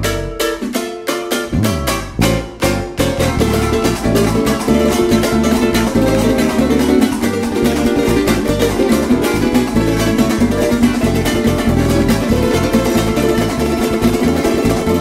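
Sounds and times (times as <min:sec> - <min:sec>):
bass guitar line: 0:00.0 - 0:15.0
fast strummed small guitars: 0:00.0 - 0:15.0.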